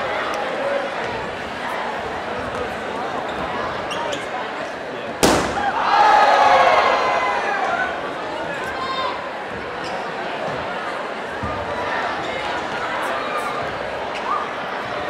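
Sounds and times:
crowd noise: 0:00.0 - 0:15.0
crowd shouting and cheering: 0:04.9 - 0:15.0
balloon bursting: 0:05.2 - 0:05.9.

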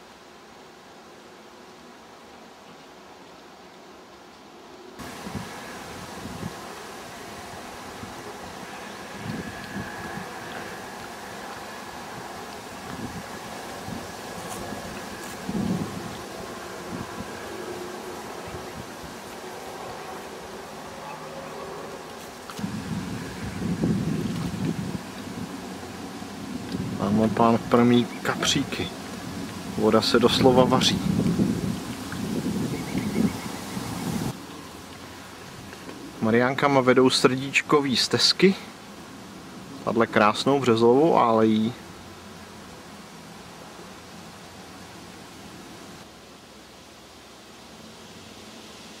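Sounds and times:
faint steady hiss: 0:00.0 - 0:49.0
wind buffeting microphone: 0:05.0 - 0:20.6, 0:22.5 - 0:34.4.

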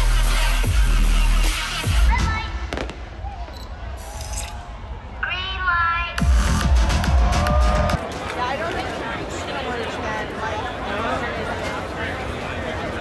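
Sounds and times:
electronic dance music: 0:00.0 - 0:02.7, 0:05.9 - 0:08.0
crowd shouting: 0:06.3 - 0:08.2.

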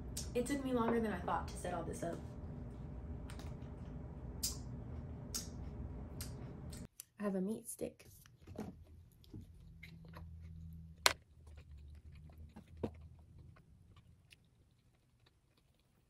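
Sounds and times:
person chewing close to microphone: 0:08.8 - 0:16.0.

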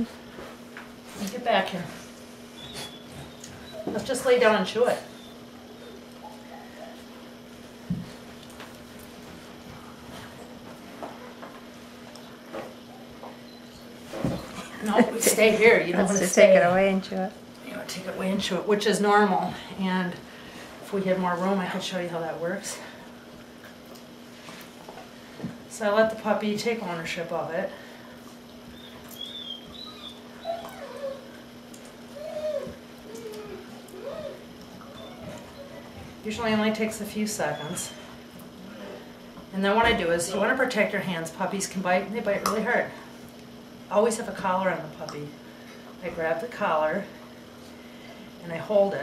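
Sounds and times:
steady low hum: 0:00.0 - 0:49.0
puppy whimpering: 0:02.6 - 0:04.0, 0:04.8 - 0:07.2, 0:28.7 - 0:31.4, 0:32.1 - 0:36.0, 0:37.5 - 0:38.1.

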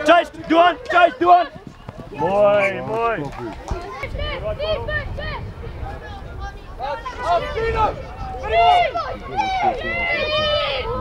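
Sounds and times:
voices shouting over one another: 0:00.0 - 0:03.2, 0:03.8 - 0:11.0.

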